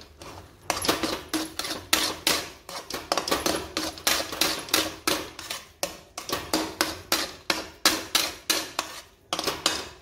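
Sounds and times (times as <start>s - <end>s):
metal spatula clanking in pan: 0.0s - 10.0s.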